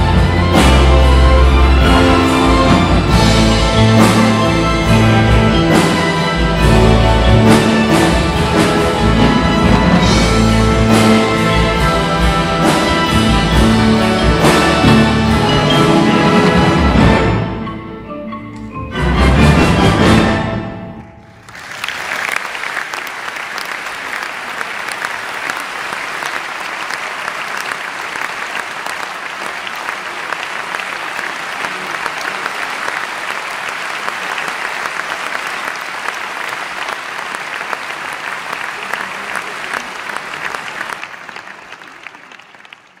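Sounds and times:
audience applauding: 0:21.0 - 0:43.0.

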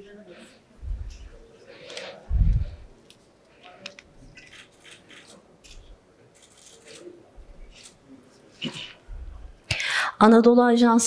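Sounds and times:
soft low thumps: 0:00.8 - 0:01.3, 0:02.3 - 0:02.9.

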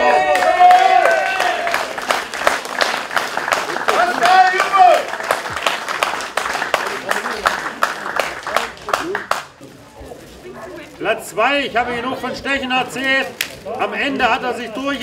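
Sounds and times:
crowd clapping: 0:00.0 - 0:09.6.

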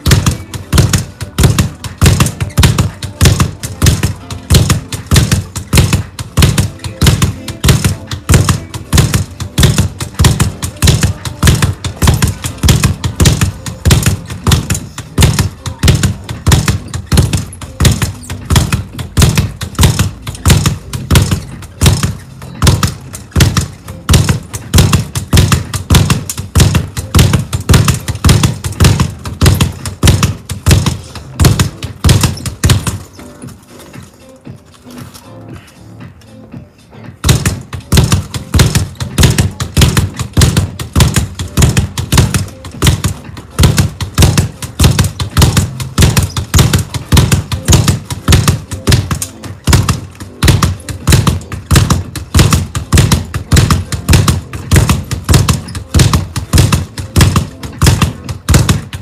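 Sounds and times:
speed bag being punched: 0:00.0 - 0:33.2, 0:37.2 - 0:59.0.

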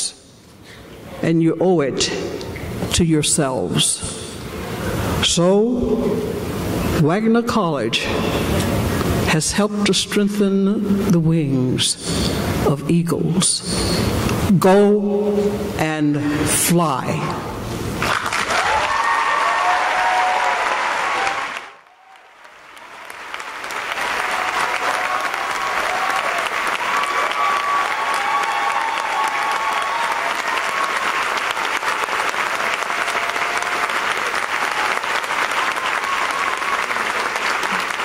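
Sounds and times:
audience applause: 0:18.0 - 0:38.0.

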